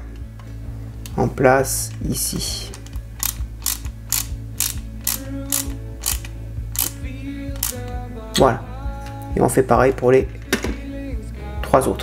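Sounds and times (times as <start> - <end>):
ratcheting screwdriver clicking: 2.7 - 8.0.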